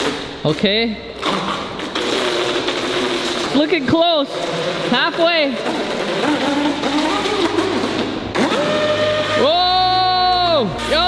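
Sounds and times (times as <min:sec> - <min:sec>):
model boat motor whining: 0:08.4 - 0:09.9.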